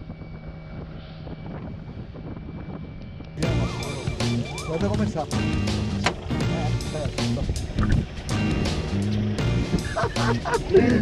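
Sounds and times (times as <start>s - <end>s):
background music with steady beat: 3.4s - 11.0s.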